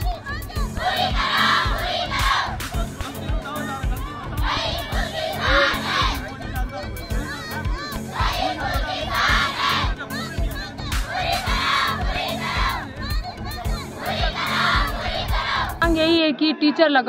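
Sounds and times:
crowd of girls chanting slogans: 0.0s - 2.8s, 4.3s - 6.2s, 7.6s - 15.8s.

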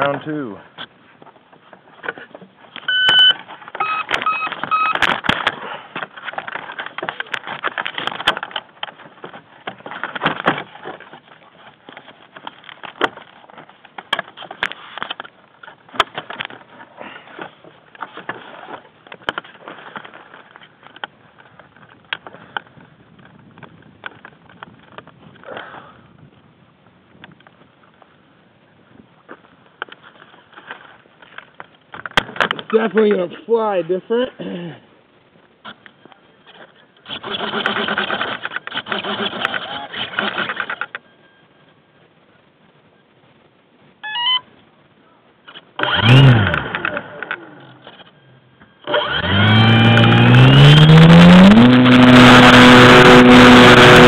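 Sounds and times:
rustling and handling noise: 0.0s - 37.0s
electronic beeps: 2.8s - 5.0s.

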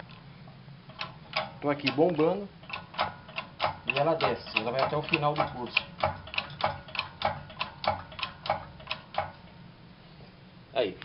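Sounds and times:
hydraulic press pump clicking: 0.9s - 9.5s.

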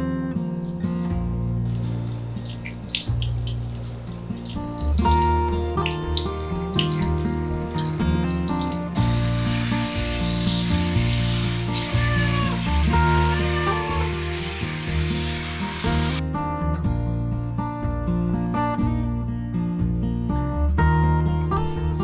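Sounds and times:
background music: 0.0s - 22.0s
shower head spraying water: 1.7s - 16.2s
cat meowing: 11.7s - 14.2s.

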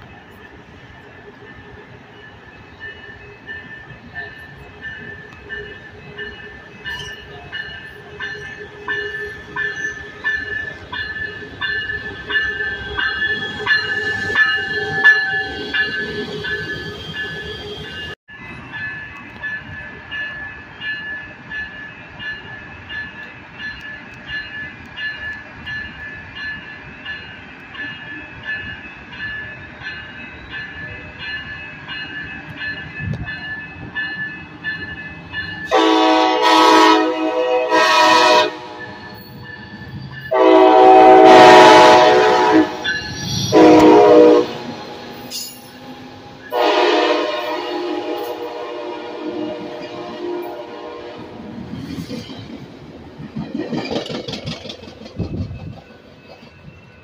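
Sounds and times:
railway warning bell ringing: 0.0s - 52.4s
train rumble: 0.0s - 57.0s
train horn: 12.5s - 18.2s, 35.7s - 39.0s, 40.3s - 45.9s, 46.5s - 51.5s.

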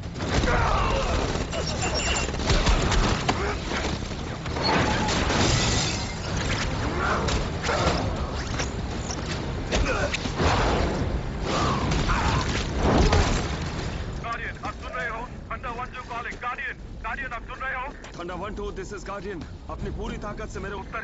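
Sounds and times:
debris crashing: 0.0s - 17.0s.

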